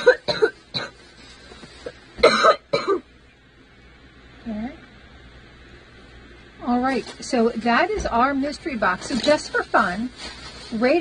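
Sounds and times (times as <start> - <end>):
young woman coughing: 0.0 - 1.0, 2.2 - 3.1.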